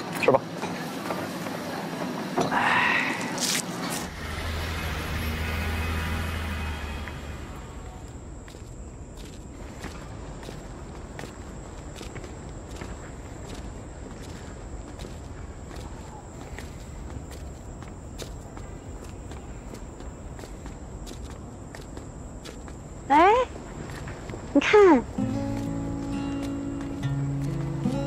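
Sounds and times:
background chatter: 0.0 - 3.9
footsteps on pavement: 8.0 - 28.0.

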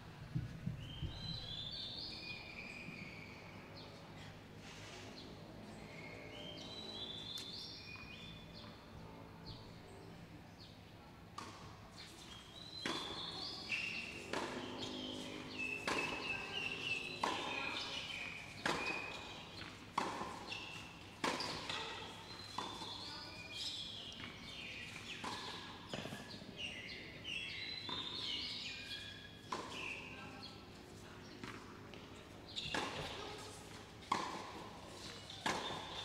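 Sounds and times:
tennis ball bounces: 11.4 - 36.0
tennis racket strikes: 34.0 - 36.0.

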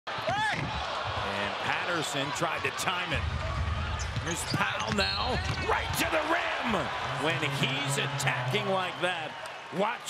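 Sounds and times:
crowd noise: 0.1 - 10.0
commentator talking: 4.3 - 10.0.

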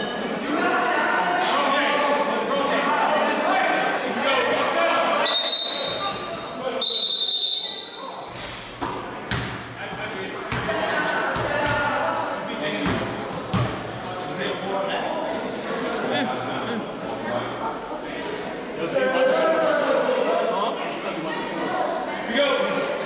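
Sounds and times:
voices echoing in a hall: 0.0 - 23.0
high whistle-like tone: 5.3 - 6.2, 6.8 - 8.1
basketball bouncing on gym floor: 8.8 - 11.9, 12.8 - 13.8.

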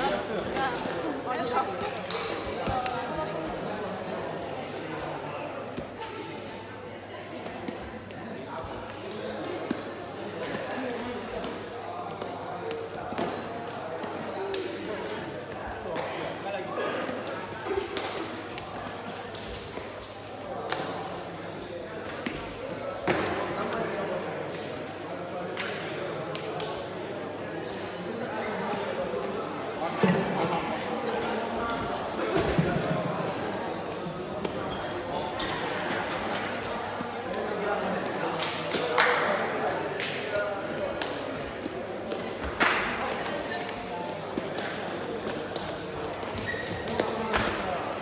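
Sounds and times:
indistinct chatter: 0.0 - 48.0
people talking in echoing hall: 0.0 - 48.0.

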